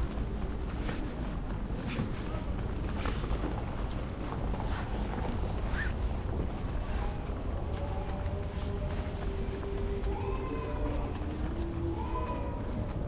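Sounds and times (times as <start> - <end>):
footsteps on stone paving: 0.0 - 13.0.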